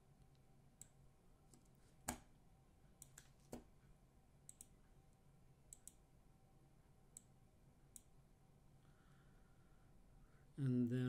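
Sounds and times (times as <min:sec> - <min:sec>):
computer mouse clicks: 0:03.0 - 0:03.7, 0:04.5 - 0:04.8, 0:05.7 - 0:06.0, 0:07.9 - 0:08.1.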